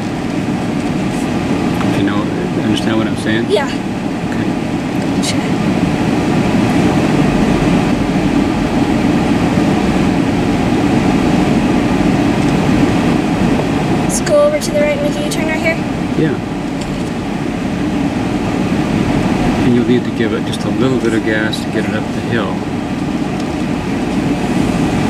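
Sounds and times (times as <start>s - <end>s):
car cabin hum: 0.0s - 25.0s.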